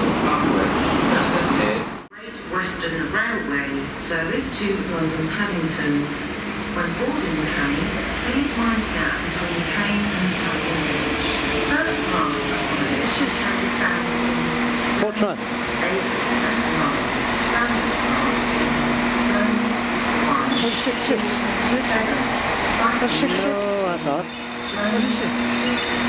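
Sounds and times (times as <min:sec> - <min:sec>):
diesel train engines humming: 0:00.0 - 0:26.0.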